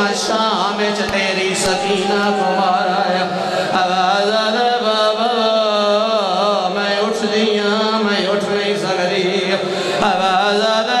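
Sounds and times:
man chanting a mournful lament: 0.0s - 11.0s.

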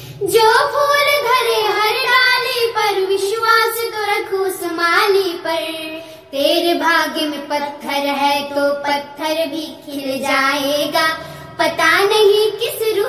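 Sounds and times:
girls singing unaccompanied: 0.2s - 13.0s.

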